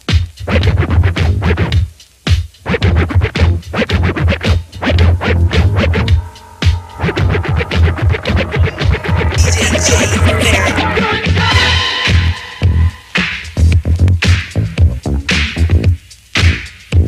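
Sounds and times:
vinyl record scratching: 0.1s - 6.3s, 7.0s - 14.6s
bass-heavy hip hop beat: 0.3s - 17.0s.

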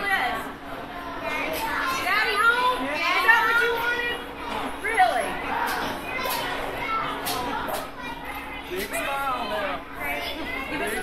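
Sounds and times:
chatter of children and adults: 0.0s - 11.0s.

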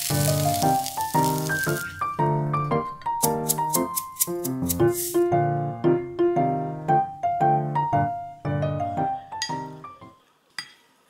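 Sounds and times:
soft piano music: 0.0s - 10.3s.

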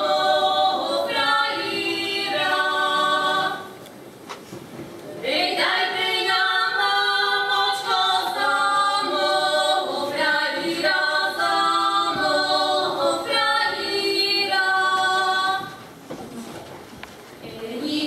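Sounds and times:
women's choir singing a cappella: 0.0s - 3.8s, 5.2s - 15.9s, 17.4s - 18.0s.

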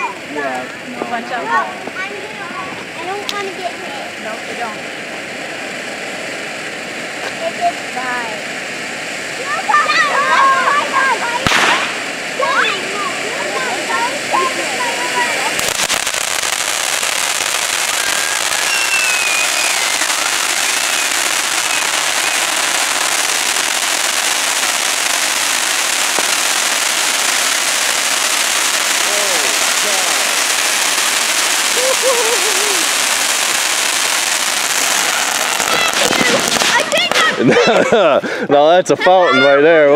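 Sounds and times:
firework fountain hissing and crackling: 0.0s - 39.9s
sharp pop: 11.4s - 12.1s.

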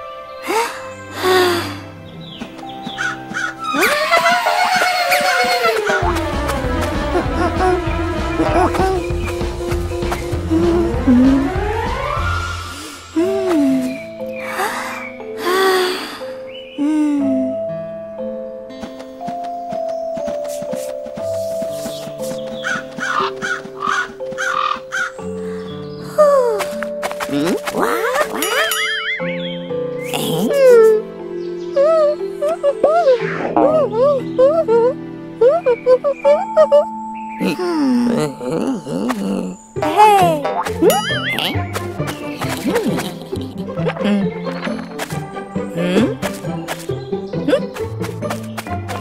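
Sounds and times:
background music: 0.0s - 49.0s
cartoon crows cawing: 3.0s - 6.1s, 22.6s - 25.3s
cartoon crow cawing: 22.7s - 25.3s.

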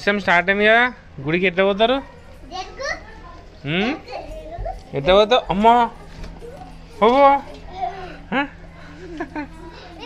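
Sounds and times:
children chattering: 1.5s - 10.0s
child speaking high-pitched: 2.5s - 3.4s.

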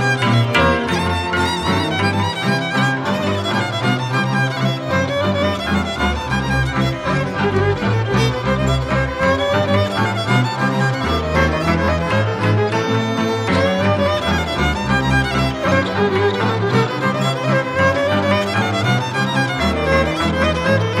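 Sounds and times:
folk violin melody: 0.0s - 21.0s
low string accompaniment: 0.0s - 21.0s.

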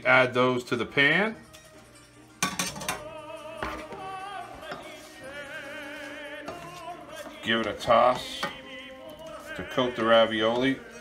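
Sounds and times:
person singing with vibrato: 2.9s - 11.0s.

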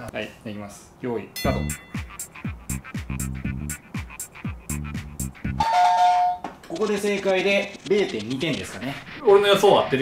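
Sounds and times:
two-note ding-dong chime: 1.4s - 2.1s
electronic countdown music: 1.4s - 10.0s.

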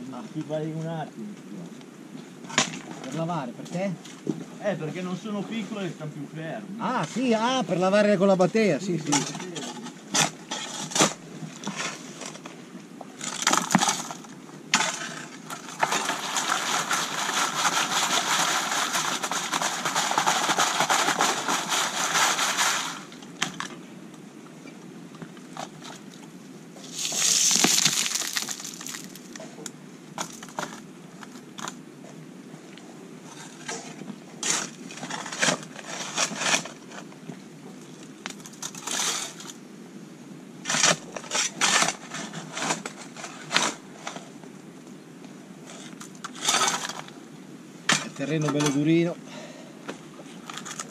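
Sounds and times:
shovel scraping stones: 9.1s - 12.4s, 13.2s - 23.6s, 26.8s - 29.6s, 30.2s - 30.8s, 33.3s - 37.1s, 38.4s - 39.6s, 40.6s - 44.2s, 45.7s - 47.1s
pebbles clattering: 13.2s - 23.1s, 26.8s - 29.5s, 30.2s - 30.8s
gravel rattling in sieve: 14.8s - 23.2s, 26.8s - 29.5s.

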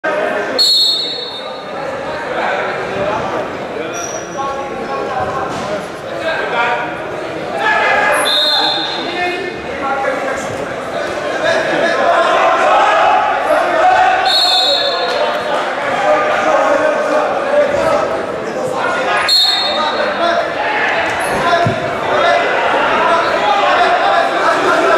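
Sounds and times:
voices in a hall: 0.0s - 24.9s
referee's whistle: 0.6s - 1.6s, 8.2s - 9.2s, 14.2s - 15.3s, 19.2s - 20.0s.

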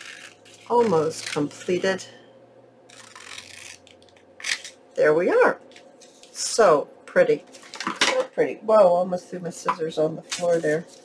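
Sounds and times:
scissors cutting paper: 2.9s - 4.7s.

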